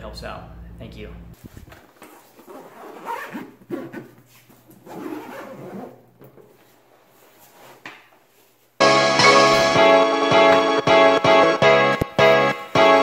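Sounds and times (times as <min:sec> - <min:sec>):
backpack zipper pulled: 0:02.0 - 0:04.1, 0:04.8 - 0:06.0.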